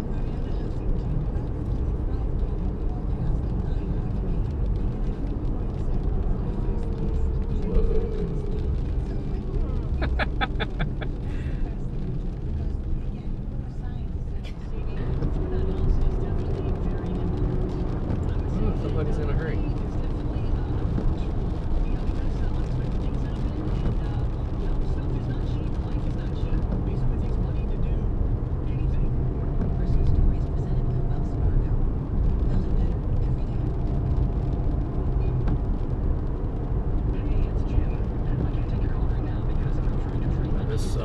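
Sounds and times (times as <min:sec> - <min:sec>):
car engine: 0:00.0 - 0:41.0.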